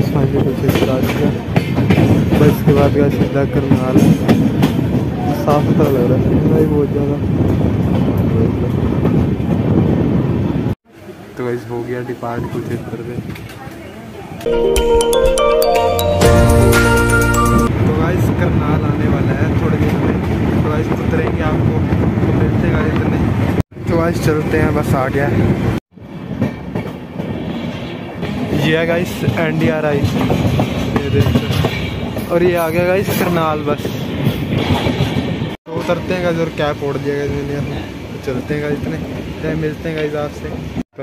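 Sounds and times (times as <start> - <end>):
train wheels rumbling on rails: 0.0 - 11.4, 17.7 - 40.9.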